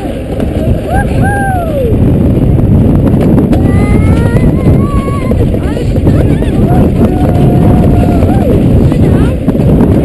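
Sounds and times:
sled rumbling down metal run: 0.0 - 10.0.

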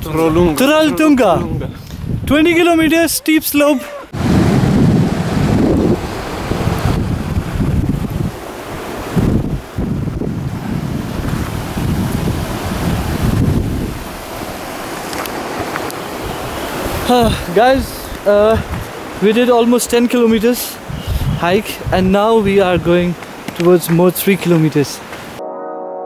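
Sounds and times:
wind buffeting microphone: 0.0 - 24.1.

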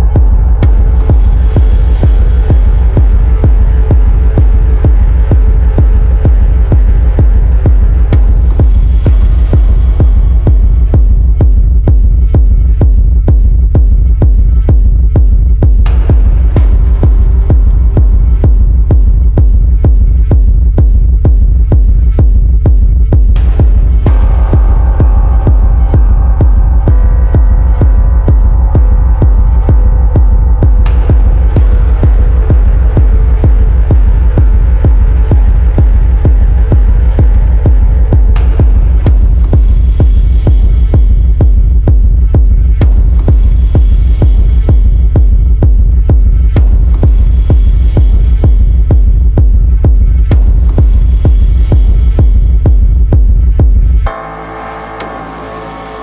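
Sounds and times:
kick drum: 0.0 - 54.3
deep bass hum: 0.0 - 56.0.

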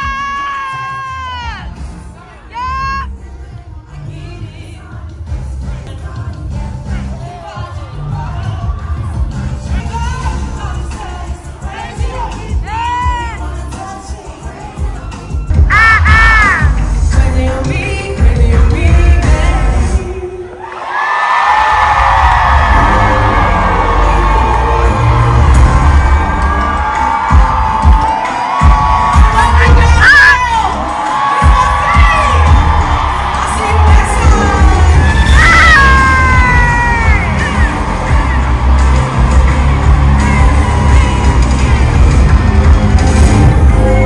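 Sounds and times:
crowd cheering and screaming: 0.0 - 1.8, 14.6 - 16.8, 19.9 - 44.0
person singing into microphone: 2.2 - 20.6, 33.4 - 38.9
heavy bass beat: 15.5 - 20.0, 21.8 - 44.0.

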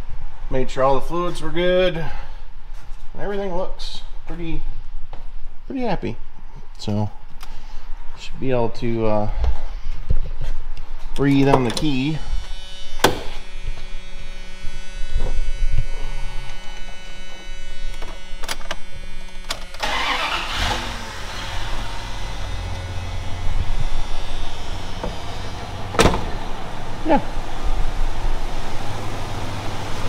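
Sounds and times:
electric buzz: 12.2 - 29.2
engine starting and idling: 19.5 - 27.0.

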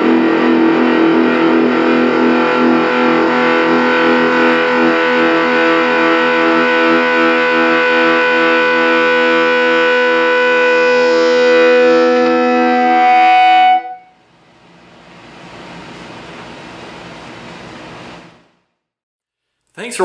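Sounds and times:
distorted electric guitar chord: 0.0 - 14.1.

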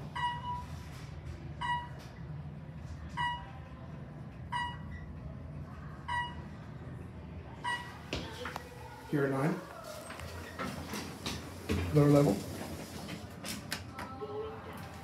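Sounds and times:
elevator car humming: 0.0 - 15.0.

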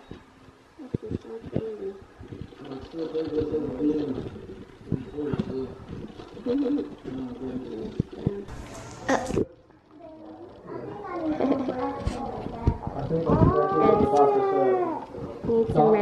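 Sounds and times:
young child whining: 10.7 - 15.2.

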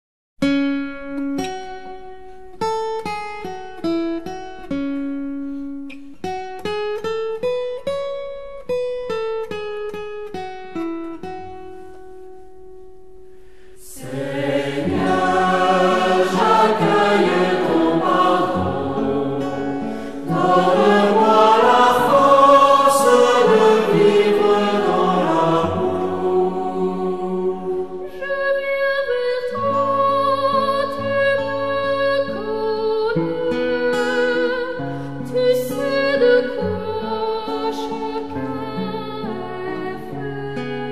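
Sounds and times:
choir singing a hymn: 13.8 - 28.6.

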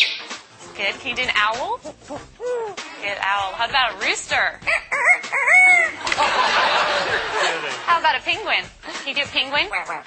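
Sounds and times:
parrot imitating rooster crow: 4.6 - 6.0
audience laughter: 6.0 - 8.0.

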